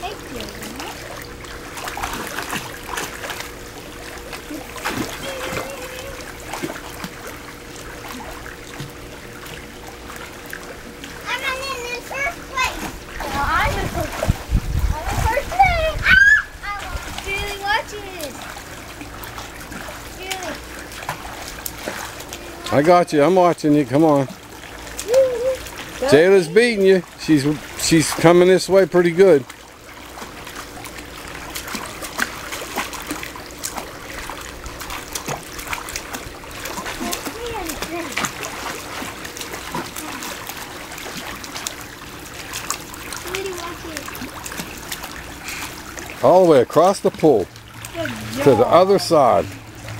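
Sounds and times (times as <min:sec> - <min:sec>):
water splashing in a pool: 0:00.0 - 0:49.9
children calling and squealing: 0:04.5 - 0:06.3, 0:11.2 - 0:14.3, 0:14.9 - 0:18.4, 0:25.0 - 0:25.7.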